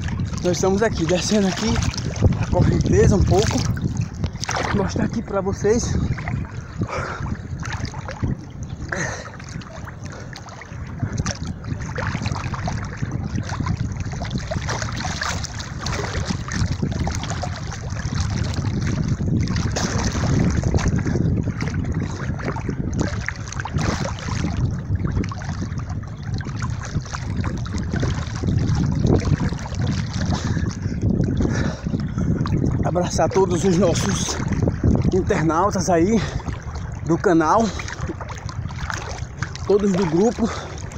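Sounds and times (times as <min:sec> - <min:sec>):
water splashing from swimming: 0:00.0 - 0:40.9
wind buffeting microphone: 0:00.0 - 0:40.9.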